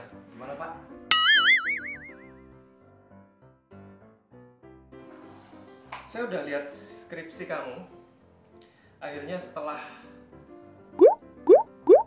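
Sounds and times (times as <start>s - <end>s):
soft background music: 0.0s - 12.0s
cartoon boing: 1.1s - 2.3s.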